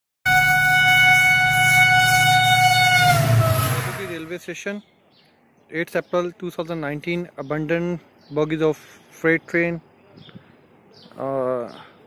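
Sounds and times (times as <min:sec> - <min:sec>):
train horn long steady note: 0:00.3 - 0:04.3.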